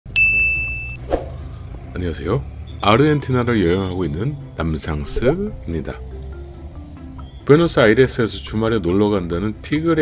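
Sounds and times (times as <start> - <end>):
bell-like ding: 0.1 - 1.0
street traffic rumble: 0.1 - 10.0.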